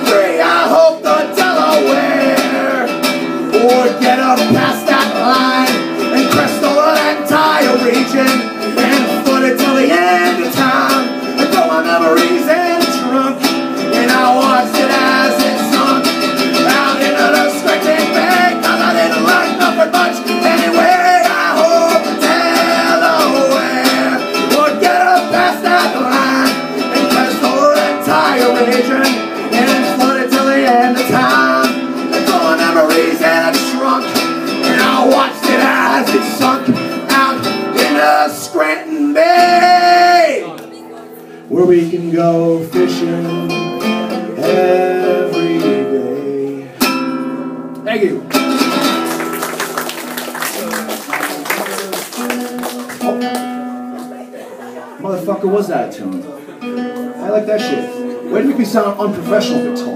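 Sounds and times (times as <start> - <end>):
man singing into microphone: 0.0 - 40.5, 41.5 - 46.8, 58.3 - 59.9
acoustic guitar strumming: 0.0 - 59.9.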